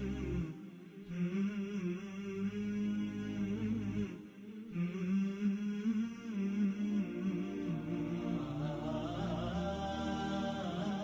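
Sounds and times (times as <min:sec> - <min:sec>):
low voice chanting: 0:00.0 - 0:11.0.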